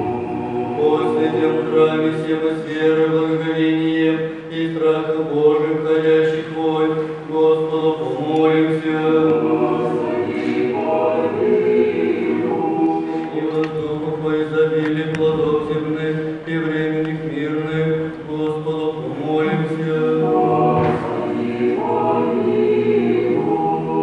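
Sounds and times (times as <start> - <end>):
choir singing liturgical chant: 0.0 - 24.0.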